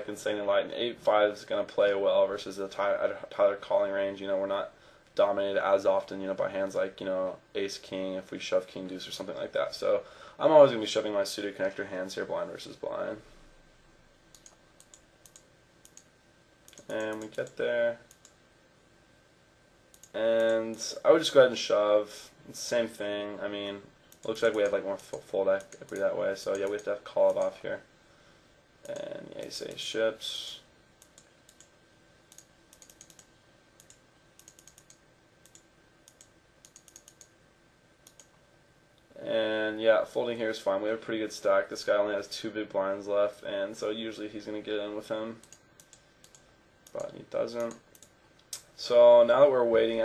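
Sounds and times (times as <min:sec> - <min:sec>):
computer mouse clicking: 0:14.3 - 0:18.4, 0:19.9 - 0:20.8, 0:24.1 - 0:27.5, 0:28.8 - 0:29.0, 0:31.0 - 0:31.7, 0:32.3 - 0:37.4, 0:38.0 - 0:38.4, 0:45.4 - 0:48.7.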